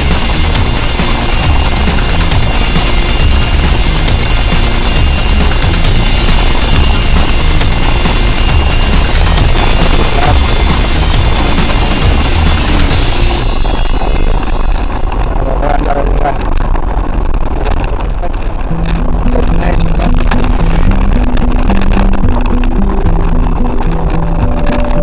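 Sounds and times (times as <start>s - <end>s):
vehicle engine and road noise: 0.0s - 25.0s.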